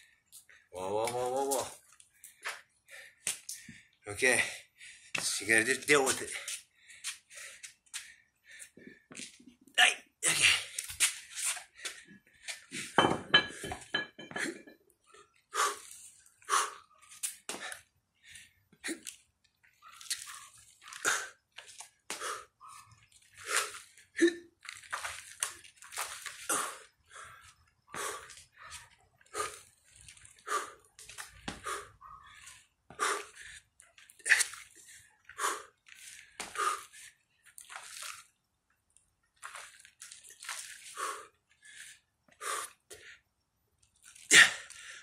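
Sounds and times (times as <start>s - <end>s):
man breathing hard: 2.2s - 5.2s, 6.3s - 9.3s, 15.5s - 16.9s, 22.1s - 22.6s, 26.5s - 29.8s, 30.4s - 37.2s, 40.9s - 43.2s.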